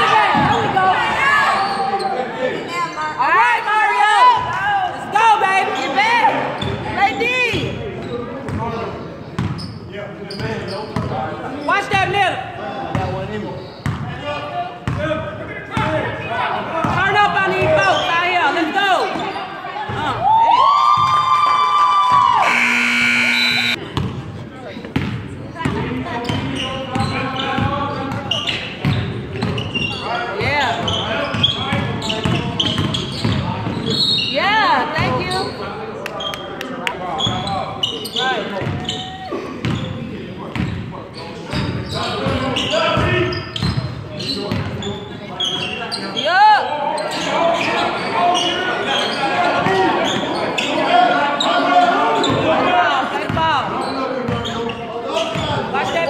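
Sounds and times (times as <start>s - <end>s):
sneakers squeaking: 0.0s - 2.2s, 6.5s - 12.0s, 12.9s - 14.1s, 16.8s - 18.4s, 22.2s - 24.4s, 25.0s - 35.6s, 36.2s - 52.6s, 53.2s - 56.0s
voices echoing in a hall: 0.0s - 56.0s
shrill whistle blast: 22.4s - 23.8s.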